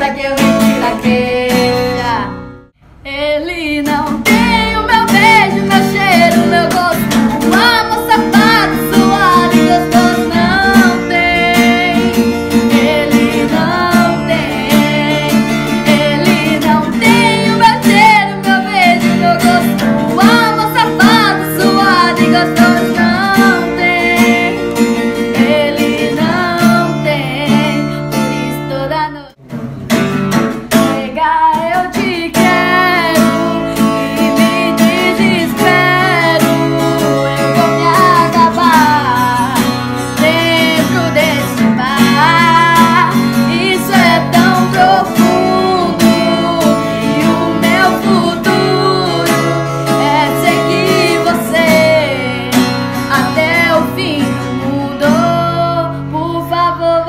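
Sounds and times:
strummed acoustic guitar: 0.0s - 2.8s, 3.6s - 57.0s
girl singing: 0.0s - 29.4s, 30.6s - 57.0s.

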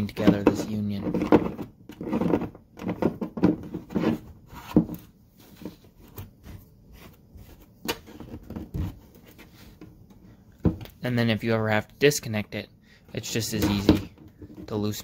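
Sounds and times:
plastic rubbing and scraping: 0.0s - 10.2s, 13.2s - 15.0s.

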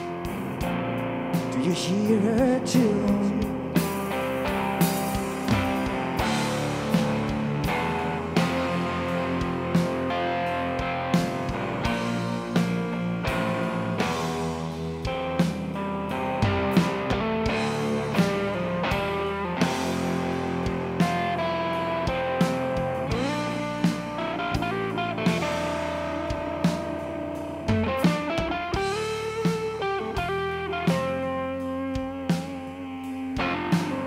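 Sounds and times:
drum kit hits: 0.0s - 34.0s
electric guitar lines: 0.0s - 34.0s.

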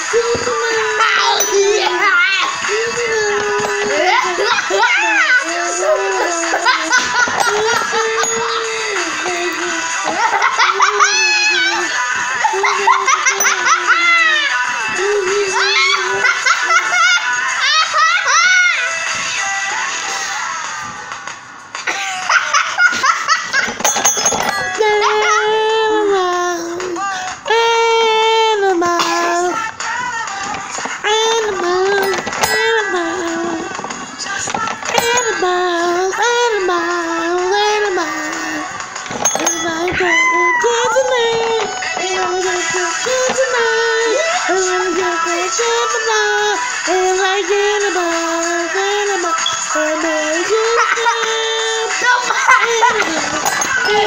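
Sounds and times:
electronic singing voice: 27.5s - 51.9s.

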